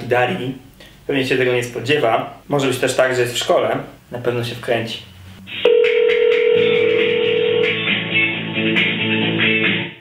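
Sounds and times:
music with a beat: 5.4s - 10.0s
telephone call tone: 5.6s - 7.9s.

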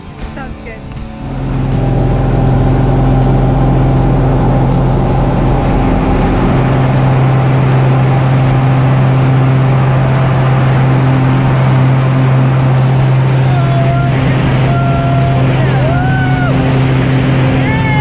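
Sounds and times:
propeller aeroplane engine drone: 0.0s - 18.0s.

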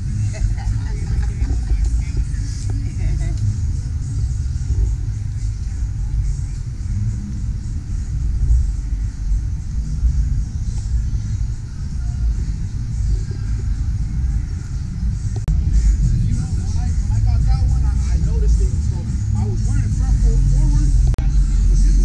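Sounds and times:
indistinct voices: 0.0s - 22.0s
low street rumble: 0.0s - 22.0s.

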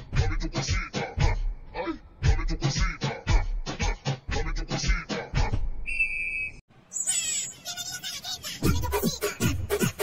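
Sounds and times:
squeaky hissing effect: 6.9s - 7.8s.

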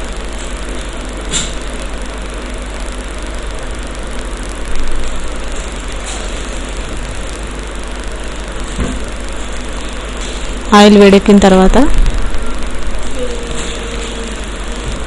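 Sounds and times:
low hum: 0.0s - 15.0s
steady hiss: 0.0s - 15.0s.

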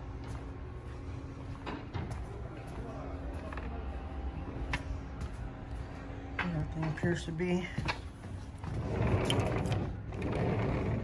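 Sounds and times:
sliding door rollers rumbling: 8.6s - 11.0s.

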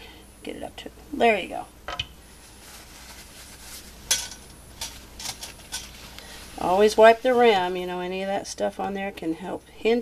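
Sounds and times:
dishes and utensils clinking: 4.1s - 6.0s.

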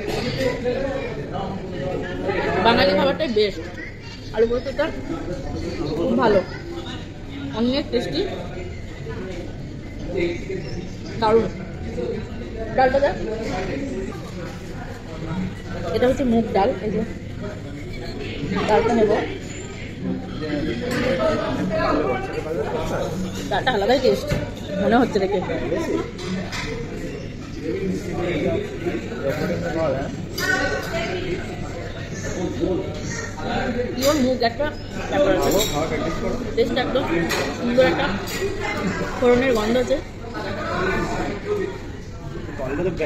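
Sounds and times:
background chatter in a room: 0.0s - 43.0s
people talking: 20.0s - 43.0s.

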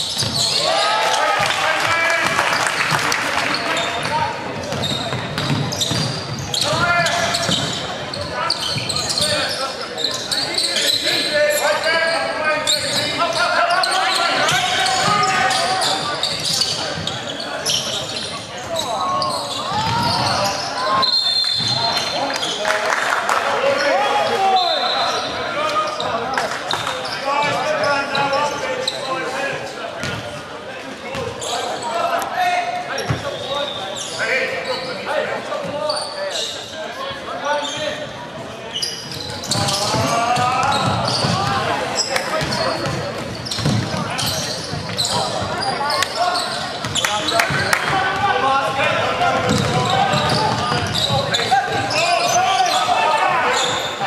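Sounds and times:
basketball bouncing on hardwood floor: 4.7s - 6.1s, 43.6s - 43.9s, 49.4s - 49.8s.

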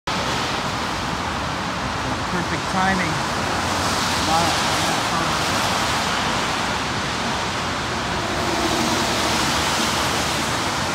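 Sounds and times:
tyres hissing on wet road: 0.1s - 10.9s.

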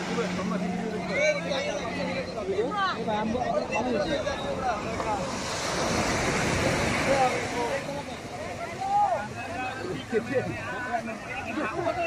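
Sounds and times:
sea surf breaking on beach: 3.8s - 12.0s.

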